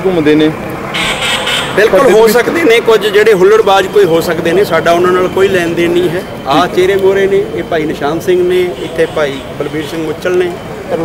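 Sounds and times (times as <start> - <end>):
man speaking into microphone: 1.8 - 11.0.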